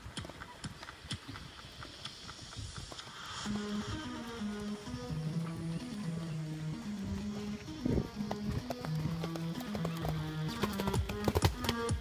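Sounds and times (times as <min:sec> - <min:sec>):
horse hoofbeats cantering: 0:00.0 - 0:12.0
music with held notes: 0:03.2 - 0:12.0.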